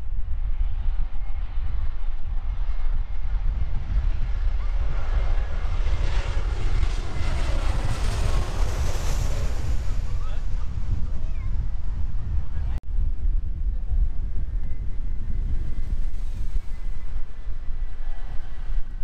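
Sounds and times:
jet airliner passing overhead: 0:00.0 - 0:12.8, 0:14.2 - 0:19.0
wind rumble on microphone: 0:00.0 - 0:19.0.

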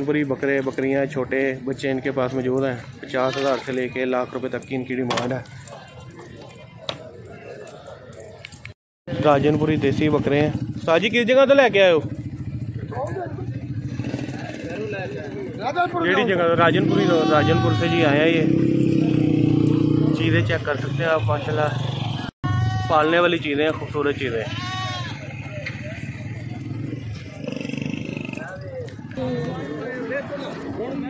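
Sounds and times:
faint voices: 0:00.0 - 0:09.4, 0:12.0 - 0:19.2, 0:22.5 - 0:31.0
livestock bleat: 0:16.7 - 0:18.4, 0:22.5 - 0:23.1, 0:24.4 - 0:25.4.

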